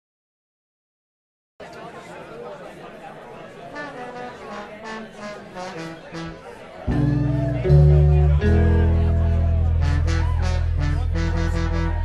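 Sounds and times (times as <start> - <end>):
brass horns short notes: 3.8 - 12.0.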